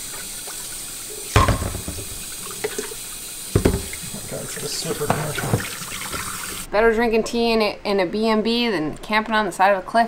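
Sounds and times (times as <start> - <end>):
tap running into a kettle: 1.3 - 2.9, 3.5 - 4.2, 5.0 - 6.4.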